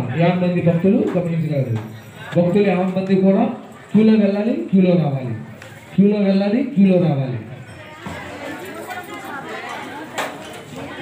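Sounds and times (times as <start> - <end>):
man making public announcement: 0.0 - 7.6.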